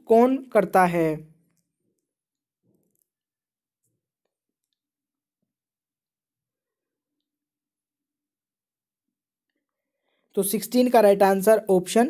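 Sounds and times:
person speaking: 0:00.0 - 0:01.3, 0:10.4 - 0:12.0.

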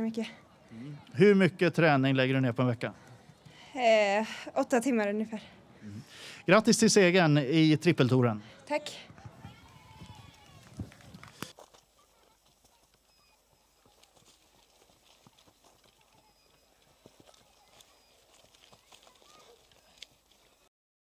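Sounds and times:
footsteps on heather: 0:09.2 - 0:20.7.

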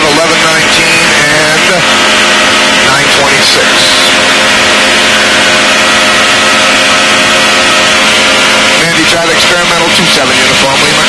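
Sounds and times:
light airplane engine drone: 0:00.0 - 0:11.0.

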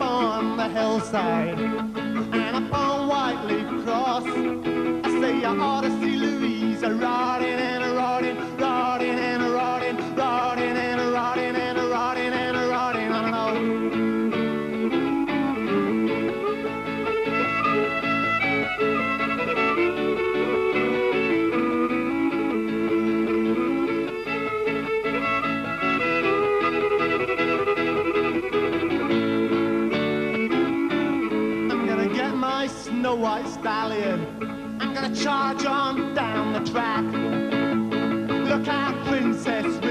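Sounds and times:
fiddle melody: 0:00.0 - 0:39.9
strummed acoustic guitar: 0:00.0 - 0:39.9.

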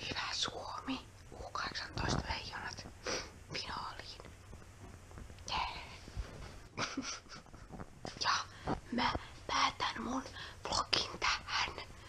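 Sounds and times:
person whispering: 0:00.0 - 0:02.8, 0:03.5 - 0:04.3, 0:05.4 - 0:06.1, 0:08.2 - 0:11.9.

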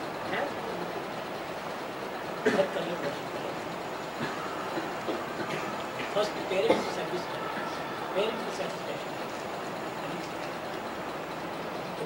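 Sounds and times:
videotape hiss and hum: 0:00.0 - 0:12.0.

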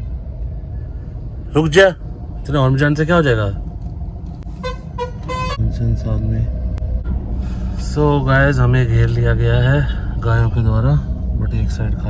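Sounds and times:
traffic rumble: 0:00.0 - 0:12.0
vehicle horn beeps: 0:04.6 - 0:05.6.

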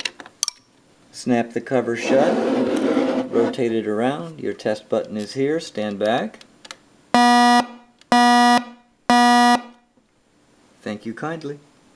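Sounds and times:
smoke alarm low beeps: 0:07.2 - 0:09.8.

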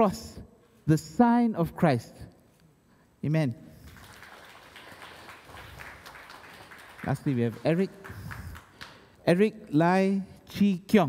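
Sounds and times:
light applause: 0:03.8 - 0:09.2.

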